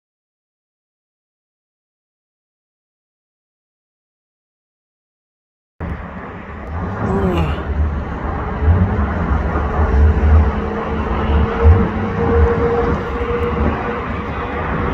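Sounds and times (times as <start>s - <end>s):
jet airliner engine rumble: 5.8s - 14.9s
wind buffeting microphone: 5.8s - 14.9s.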